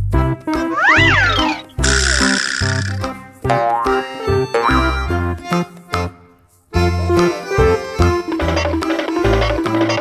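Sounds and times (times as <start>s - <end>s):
upbeat children's music: 0.0s - 10.0s
sliding tone effect: 0.7s - 3.1s.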